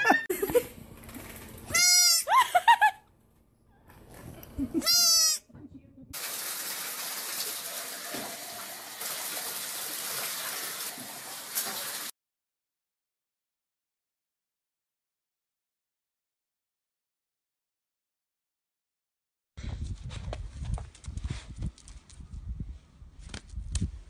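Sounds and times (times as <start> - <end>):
goat bleating: 1.7 - 2.3, 4.8 - 5.4.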